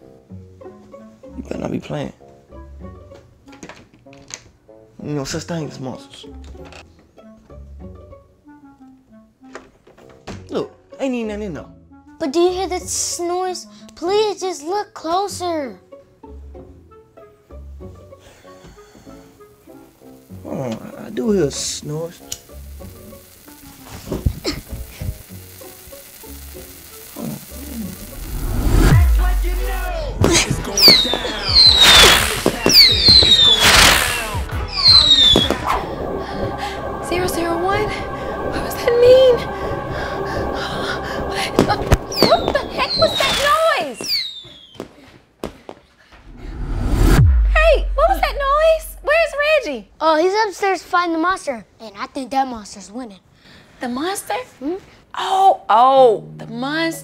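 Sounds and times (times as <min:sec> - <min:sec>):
low bass notes: 0:27.9 - 0:32.7, 0:46.3 - 0:49.6
sharp bangs: 0:28.9 - 0:35.9.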